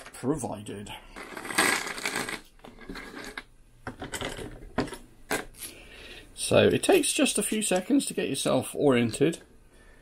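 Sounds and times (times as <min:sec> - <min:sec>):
small metal parts clinking: 0:01.2 - 0:03.4.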